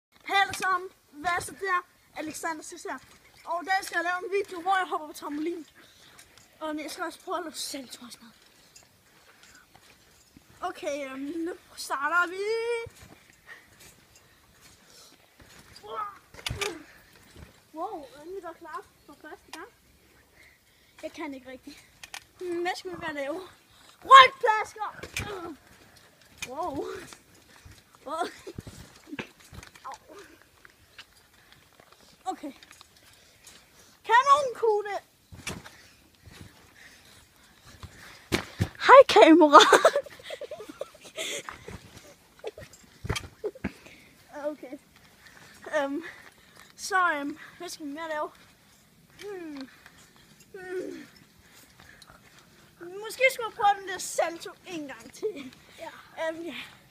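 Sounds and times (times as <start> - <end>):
trampoline bouncing thuds: 9.7 - 19.8, 22.1 - 31.3, 34.0 - 44.9
child grunting: 50.6 - 51.1.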